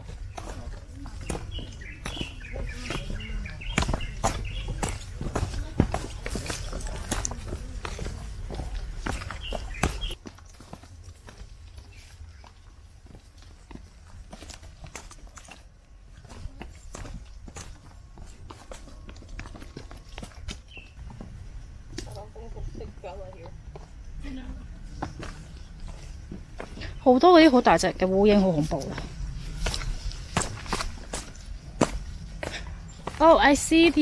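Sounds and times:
footsteps on rocky dirt trail: 0:00.0 - 0:34.0.

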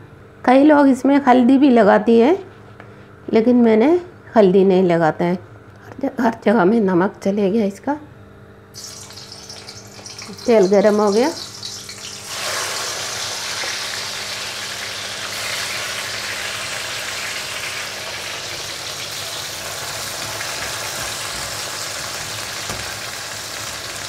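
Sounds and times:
deep-frying hiss: 0:08.7 - 0:24.0
vegetables sizzling in hot oil: 0:08.7 - 0:24.0.

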